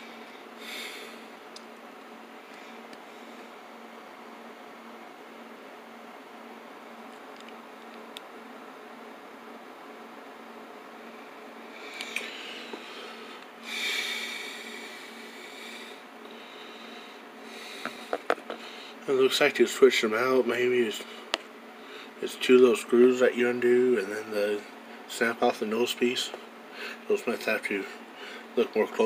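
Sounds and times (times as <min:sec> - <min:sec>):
room hum with low tone: 0:00.0 - 0:29.0.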